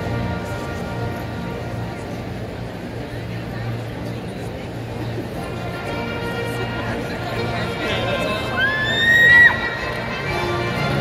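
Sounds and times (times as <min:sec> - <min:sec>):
loud high whoop: 0:08.6 - 0:09.8.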